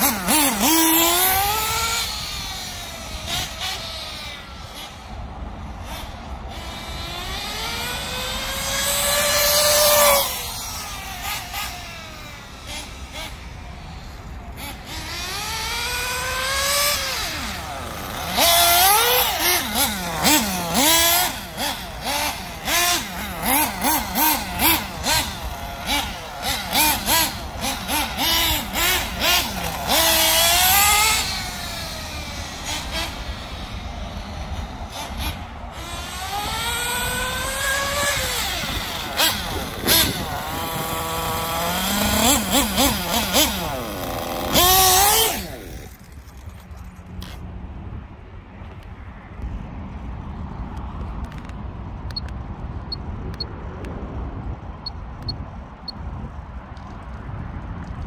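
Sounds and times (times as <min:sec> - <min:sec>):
model car engine revving: 0:00.0 - 0:05.1, 0:05.8 - 0:46.6.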